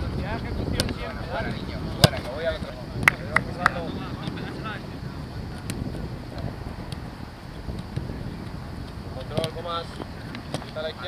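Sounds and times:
wind noise: 0:00.0 - 0:11.0
football kicks: 0:01.9 - 0:04.4.

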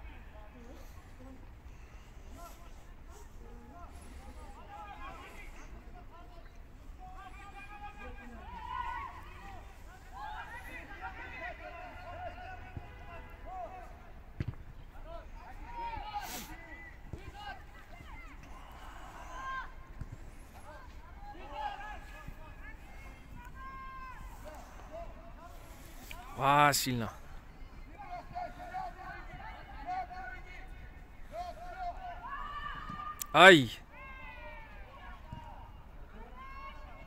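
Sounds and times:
players shouting: 0:15.2 - 0:25.7.

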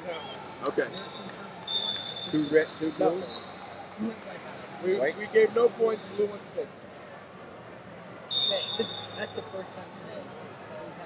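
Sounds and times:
busy arena crowd noise: 0:00.0 - 0:11.0.

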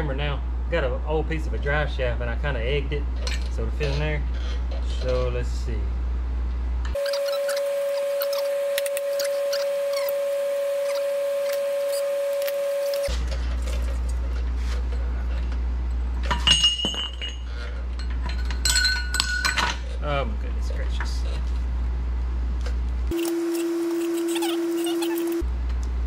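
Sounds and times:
steel tools clinking: 0:16.2 - 0:19.8.

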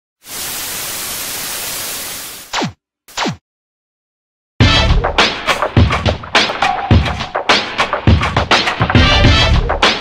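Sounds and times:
television static hiss: 0:00.2 - 0:02.4.

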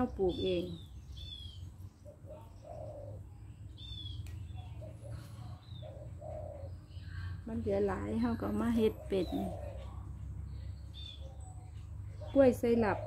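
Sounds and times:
dove cooing: 0:00.0 - 0:07.2, 0:07.8 - 0:13.0.

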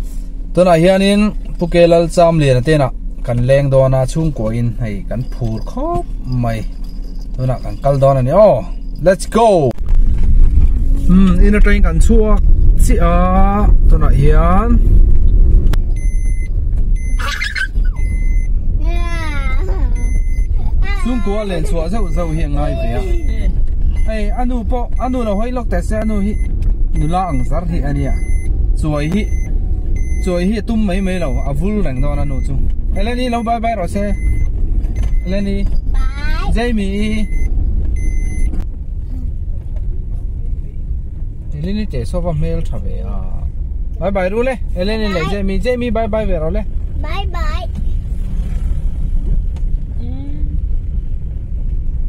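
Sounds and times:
car driving rumble inside cabin: 0:00.0 - 0:52.0
high electronic beep: 0:15.9 - 0:18.5, 0:20.0 - 0:20.6, 0:21.7 - 0:35.5, 0:37.1 - 0:38.6.

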